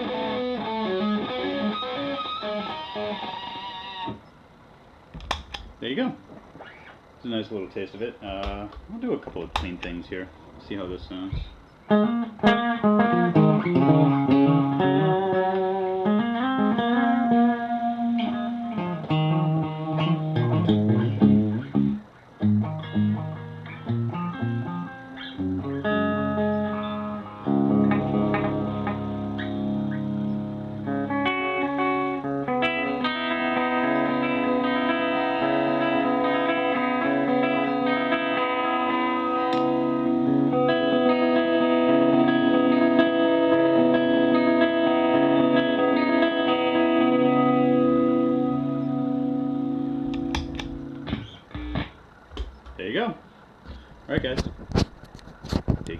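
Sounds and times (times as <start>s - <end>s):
clean electric guitar with delay: 0.0s - 4.2s, 11.9s - 52.0s.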